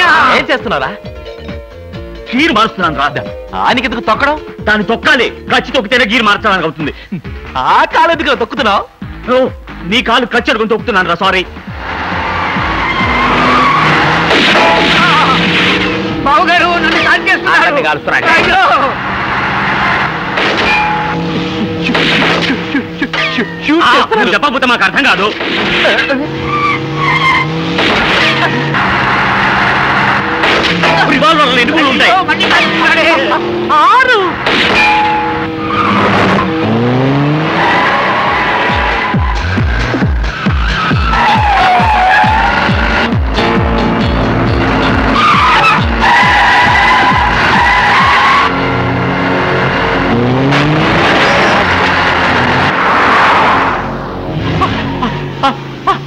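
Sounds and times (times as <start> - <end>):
film music with held notes: 0.0 - 56.0
car tires screeching: 11.1 - 56.0
vehicle engines revving: 11.3 - 56.0
tyre squeal: 12.2 - 15.4, 25.8 - 29.8, 34.8 - 36.8, 37.4 - 42.9, 45.0 - 48.5, 54.4 - 55.5.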